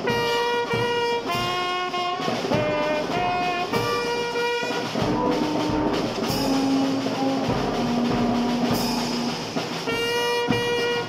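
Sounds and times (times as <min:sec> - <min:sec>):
brass band long notes: 0:00.0 - 0:11.0.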